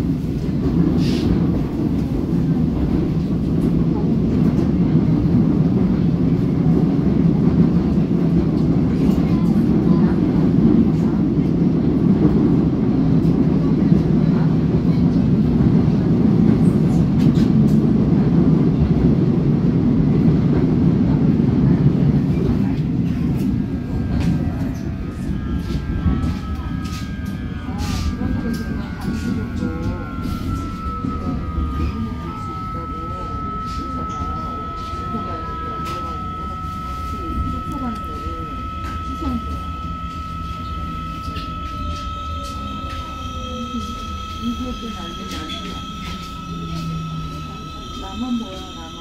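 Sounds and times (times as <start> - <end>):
train wheels rumbling on track: 0.0 - 49.0
faint whine shifting in pitch: 22.3 - 49.0.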